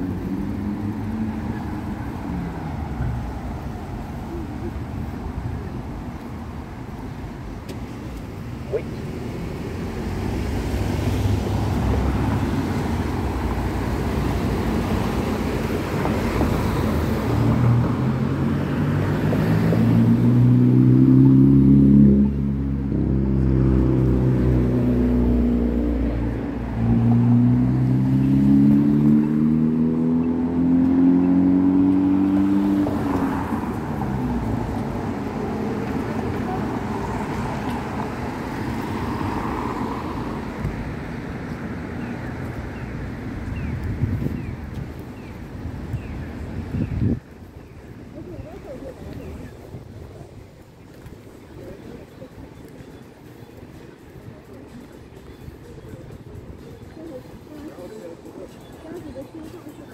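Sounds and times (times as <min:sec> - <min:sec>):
traffic noise: 0:00.0 - 0:59.9
vehicle engine accelerating: 0:09.6 - 0:40.9.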